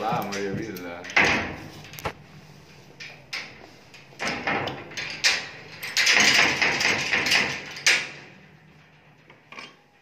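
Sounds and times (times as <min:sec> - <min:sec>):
padlock rattling against steel bars: 0:04.2 - 0:08.3
sharp metal knocks: 0:04.2 - 0:08.3.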